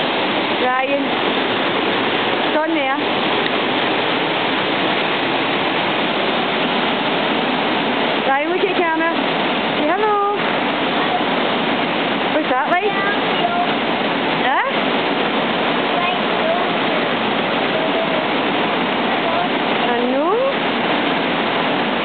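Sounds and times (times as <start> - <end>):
waterfall rushing: 0.0 - 22.0.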